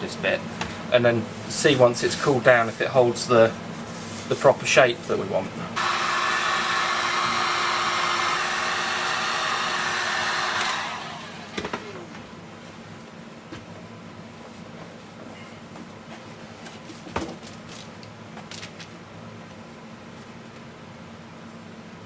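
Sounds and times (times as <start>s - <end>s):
heat gun blowing: 5.8s - 12.0s.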